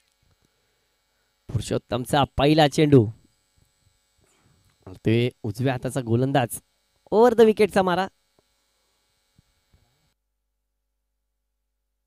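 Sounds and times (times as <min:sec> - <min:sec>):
faint electrical hum: 0:00.0 - 0:10.2.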